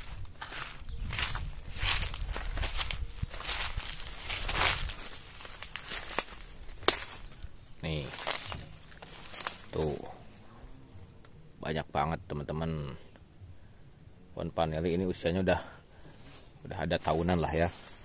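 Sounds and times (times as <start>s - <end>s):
footsteps through undergrowth: 0.0s - 10.8s, 15.9s - 18.0s
leaves and stems brushing: 0.0s - 11.0s, 15.9s - 18.0s.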